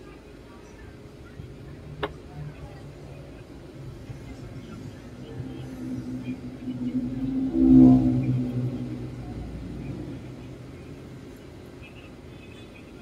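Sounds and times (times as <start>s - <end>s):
vehicle engine passing by: 1.4s - 11.9s.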